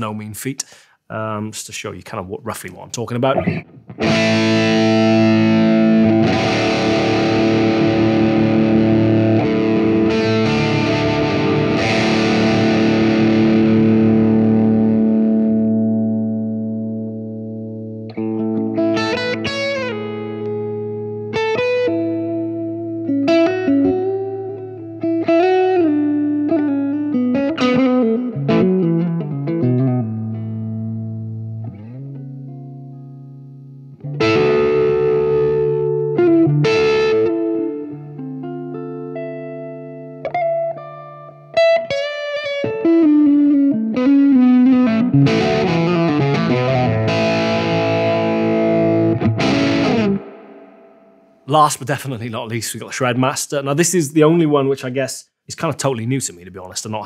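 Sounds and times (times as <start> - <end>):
overdriven electric guitar: 3.3 - 51.4.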